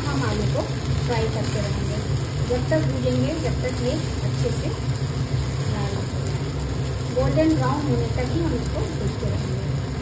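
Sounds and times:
potato frying in a pan: 0.0s - 10.0s
steady low hum: 0.0s - 10.0s.

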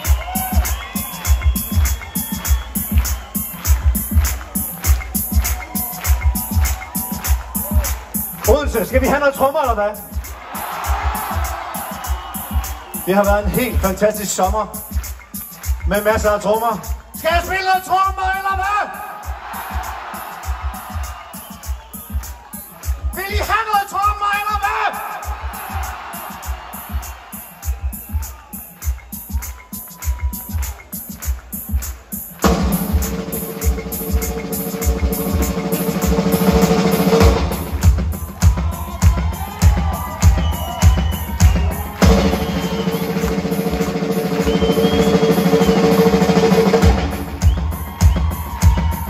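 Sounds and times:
crowd cheering: 0.0s - 49.0s
kick drum and hi-hat beat: 0.0s - 49.0s
man shouting through pa: 23.1s - 25.4s.

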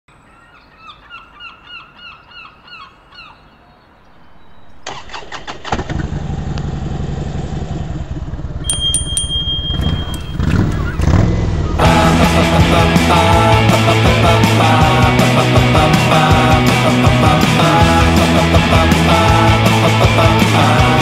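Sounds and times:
bird calling: 0.3s - 5.7s
motorcycle engine running: 5.6s - 15.5s
bright rings: 8.6s - 10.5s
rock music: 11.8s - 21.0s.

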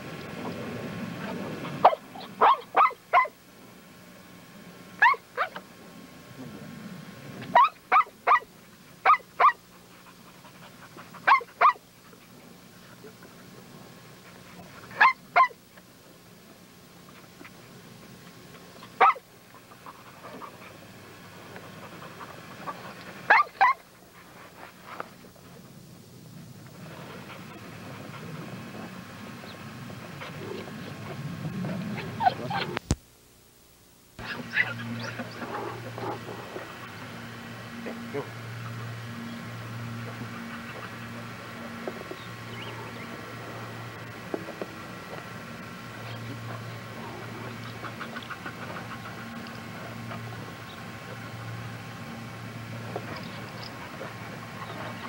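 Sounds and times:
dog yipping: 1.8s - 3.3s, 5.0s - 5.5s, 7.5s - 9.6s, 11.3s - 11.8s, 15.0s - 15.6s, 19.0s - 19.2s, 23.3s - 23.8s, 32.0s - 32.8s.

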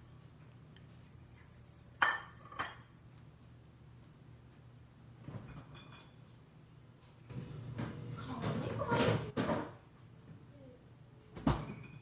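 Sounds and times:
kitchenware clinking: 1.9s - 3.0s, 5.4s - 6.3s, 11.5s - 12.0s.

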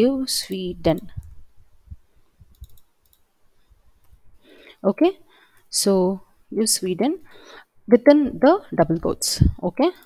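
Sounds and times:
faint computer clicking: 0.4s - 1.4s, 2.4s - 3.3s, 9.8s - 10.0s.

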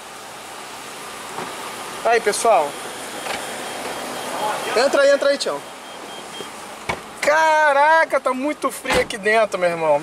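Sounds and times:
car engine idling: 0.0s - 9.8s.

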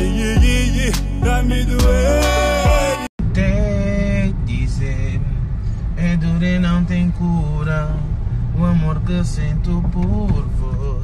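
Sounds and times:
person singing long notes: 0.0s - 3.1s
car road rumble: 0.0s - 11.0s.

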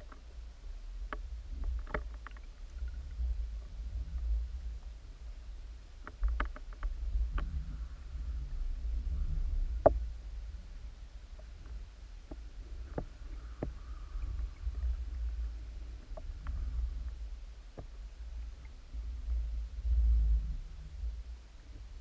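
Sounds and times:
underwater rumble: 0.0s - 22.0s.

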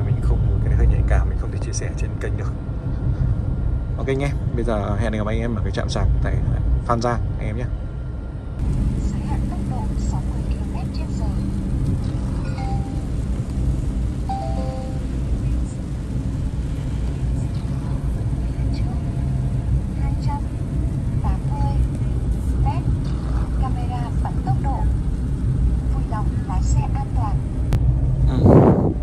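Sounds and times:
road and tyre noise in car: 0.0s - 29.0s.

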